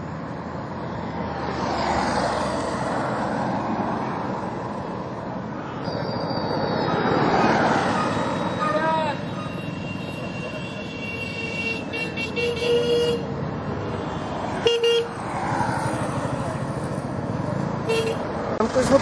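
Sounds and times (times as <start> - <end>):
motorcycles passing: 0.0 - 19.0
vehicle horn toots: 8.7 - 13.3, 14.6 - 15.1, 17.9 - 18.2.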